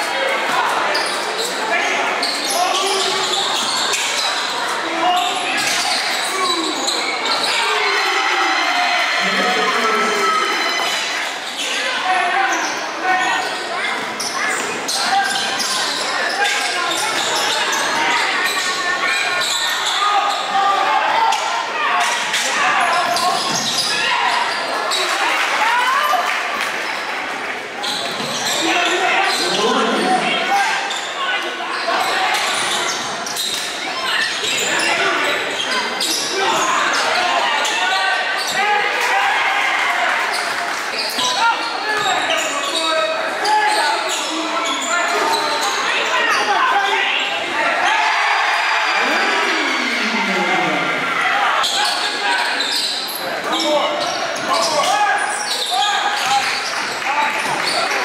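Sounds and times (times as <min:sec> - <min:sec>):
people shouting: 0:46.2 - 0:52.3.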